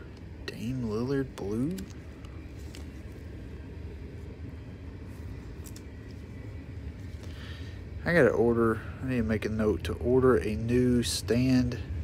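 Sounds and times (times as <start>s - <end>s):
cards clicking: 1.6s - 3.2s, 5.6s - 6.2s.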